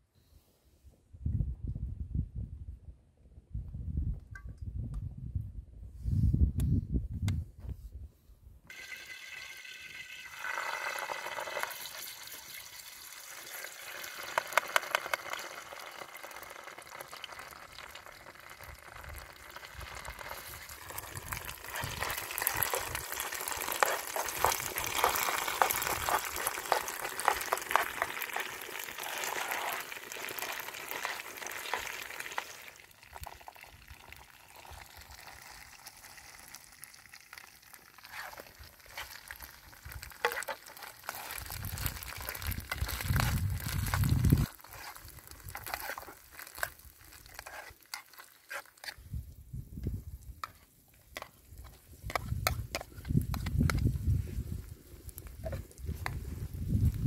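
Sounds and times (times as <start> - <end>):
paste sizzling in hot oil: 8.7 - 49.1
spoon stirring in a pan: 18.5 - 33.3, 37.9 - 49.0, 50.4 - 53.8.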